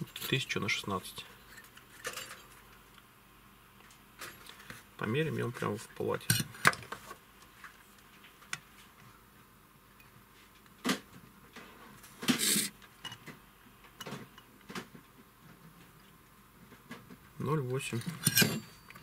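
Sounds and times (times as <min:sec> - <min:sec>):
short scrape on desk: 0:12.3 - 0:12.7.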